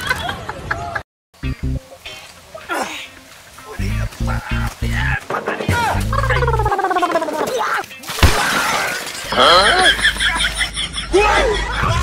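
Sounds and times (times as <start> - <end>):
comedy glass crash effect: 8.1 - 9.7.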